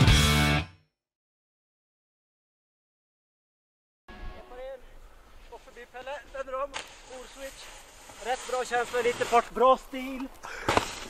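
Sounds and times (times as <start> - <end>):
steady hiss: 4.4 - 11.0.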